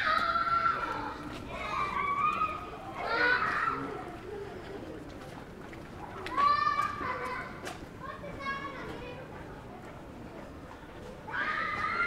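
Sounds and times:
children shouting and squealing: 0.0 - 4.4, 6.0 - 9.2, 11.2 - 12.0.

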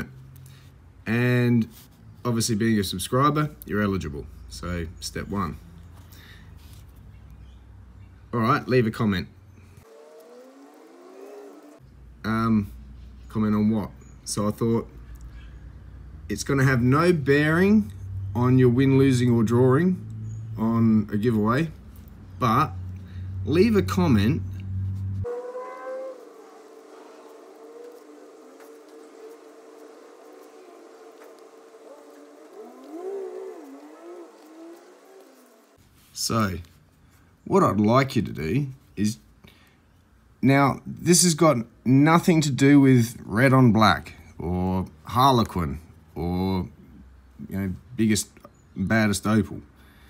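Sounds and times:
faint rising tones: 9.8 - 11.9, 24.6 - 35.8.

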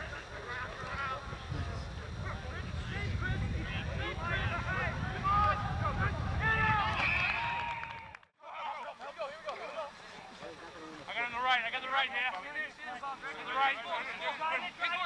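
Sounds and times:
wind rumble on microphone: 0.9 - 8.1.

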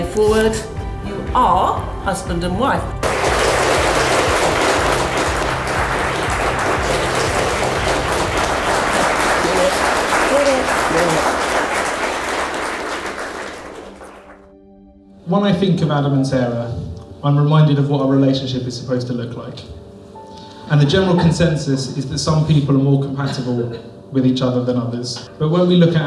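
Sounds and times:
guests applauding: 3.0 - 14.5.

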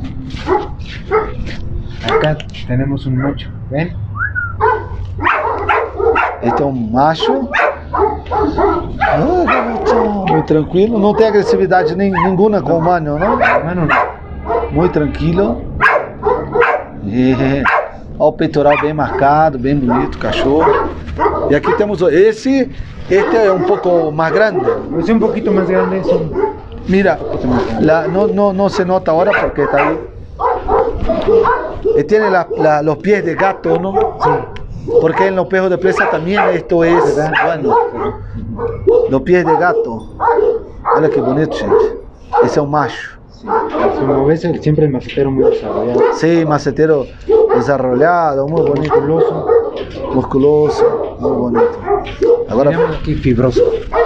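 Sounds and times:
dog barking: 0.4 - 2.5, 3.1 - 3.5, 4.5 - 54.0
dog whining: 4.2 - 6.6, 7.2 - 10.6, 11.4 - 14.9, 23.2 - 28.3, 29.3 - 32.8, 36.0 - 42.6, 47.1 - 54.0.

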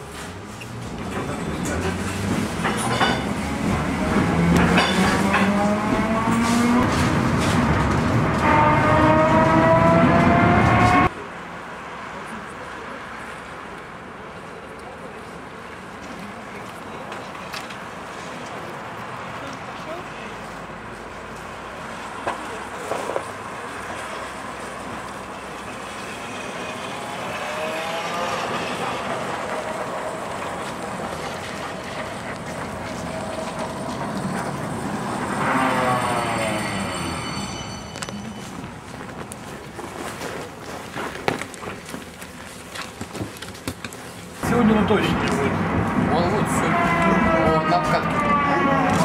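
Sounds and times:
tram electric drive whine: 22.0 - 39.9, 44.2 - 49.0.

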